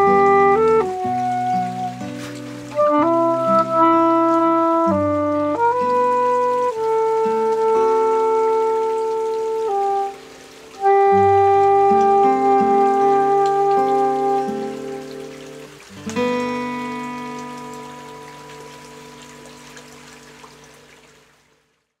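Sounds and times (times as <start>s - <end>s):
soprano saxophone note: 0.0s - 19.6s
acoustic guitar chords: 0.0s - 20.2s
stream water running: 0.0s - 22.0s.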